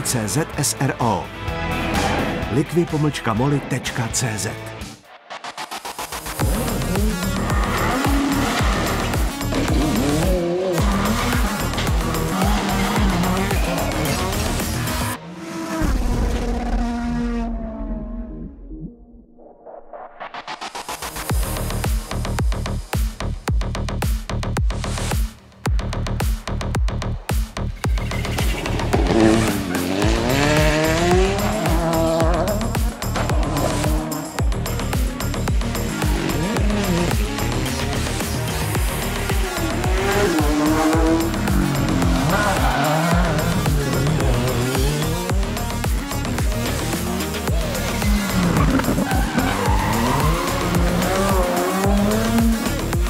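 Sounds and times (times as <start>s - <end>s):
electronic music with heavy beat: 1.6s - 16.0s, 20.2s - 53.0s
racing car engine note: 6.4s - 18.1s, 27.8s - 53.0s
tyres squealing: 40.0s - 45.2s, 47.5s - 52.7s.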